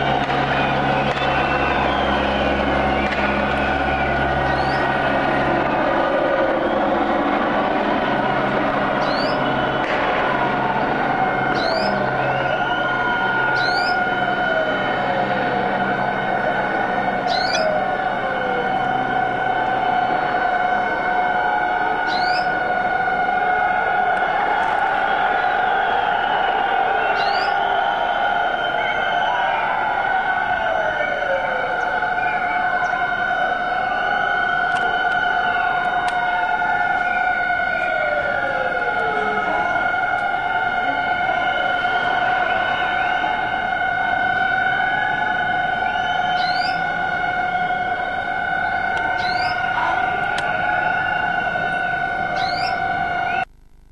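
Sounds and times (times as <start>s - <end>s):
helicopter droning: 0.0s - 53.4s
sirens wailing: 0.0s - 53.5s.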